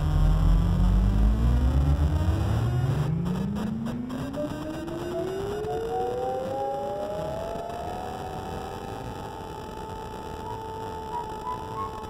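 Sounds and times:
low theremin gliding upward: 0.2s - 12.0s
high wavering theremin tone: 4.7s - 9.0s, 9.6s - 12.0s.

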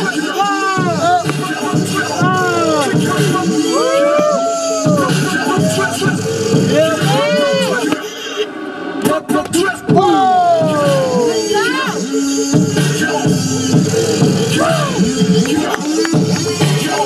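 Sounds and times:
hip-hop beat: 0.0s - 17.0s.

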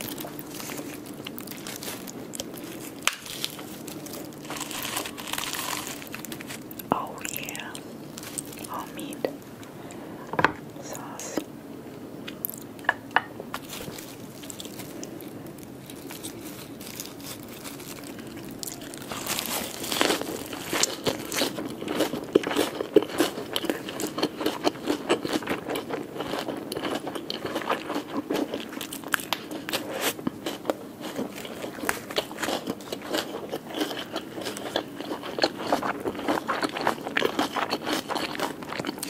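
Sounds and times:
crisp bite into lettuce: 0.0s - 6.7s, 15.8s - 21.6s
crunching and chewing: 0.0s - 10.0s, 13.5s - 39.0s.

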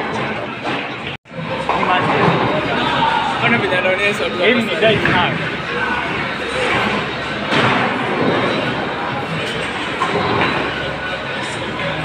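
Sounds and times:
bowling balls rolling on lanes: 0.0s - 3.4s, 4.6s - 12.0s.

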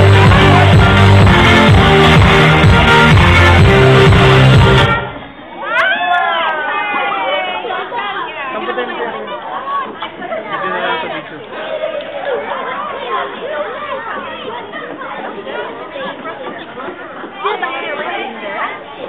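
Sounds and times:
overlapping chatter: 0.0s - 19.0s.

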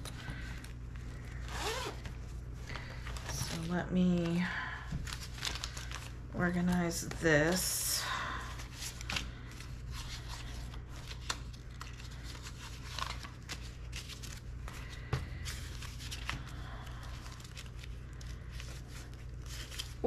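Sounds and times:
paper banknotes rustling: 0.0s - 20.0s
steady low hum: 0.0s - 20.0s.

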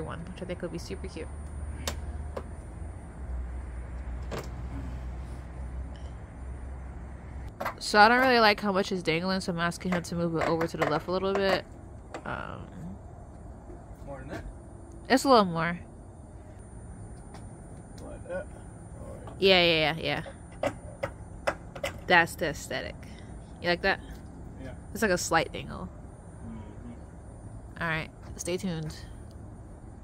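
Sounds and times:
low outdoor rumble: 0.0s - 30.0s.

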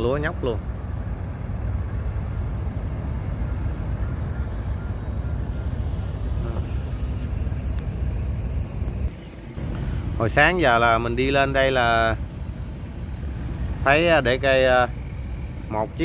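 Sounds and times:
boat engine rumbling: 0.0s - 16.0s.

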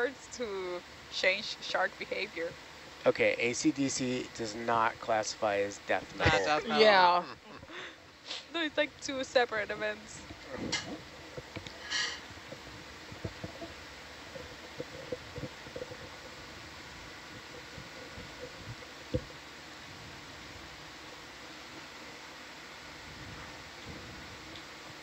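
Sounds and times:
equipment hum and hiss: 0.0s - 25.0s.

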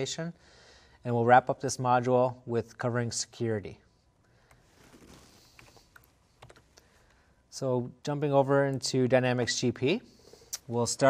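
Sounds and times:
faint computer keyboard clicks: 5.6s - 6.9s.

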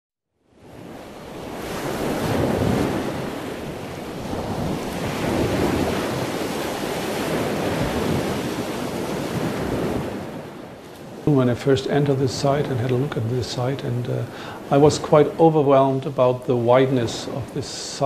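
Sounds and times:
wind noise on microphone: 0.6s - 13.4s
waves on rocky shore: 0.6s - 18.0s.

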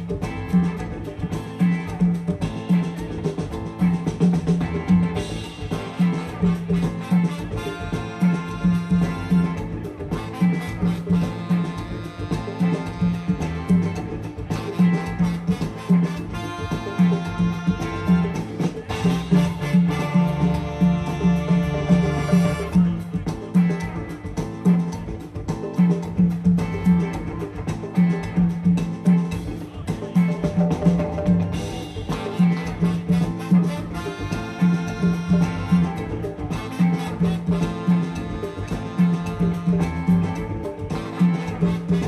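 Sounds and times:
afrobeat band playing: 0.0s - 42.0s
pulsing bass line: 0.0s - 42.0s
horn section playing: 4.7s - 25.2s, 31.3s - 42.0s.

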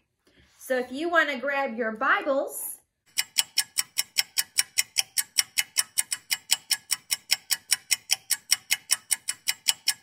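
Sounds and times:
rapid clock ticking: 3.1s - 10.0s.

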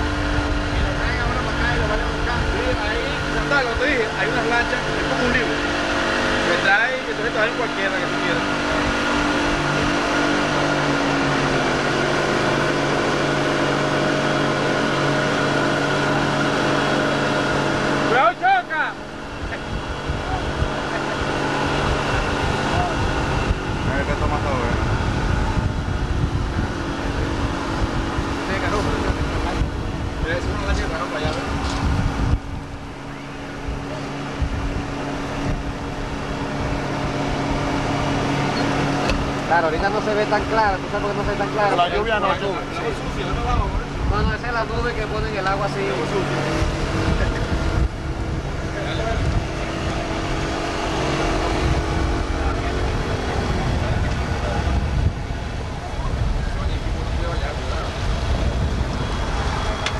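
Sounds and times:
boat engine running: 0.0s - 59.9s
rushing water: 0.0s - 59.9s
wind noise: 0.0s - 59.9s.

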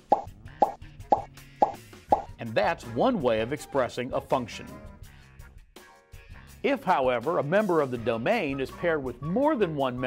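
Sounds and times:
cartoon pop sound effects: 0.0s - 2.3s.

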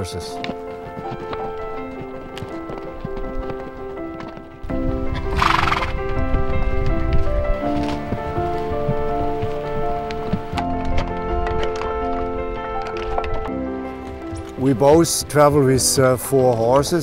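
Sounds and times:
background music: 0.0s - 17.0s
horse hooves clopping on dirt: 0.0s - 17.0s.

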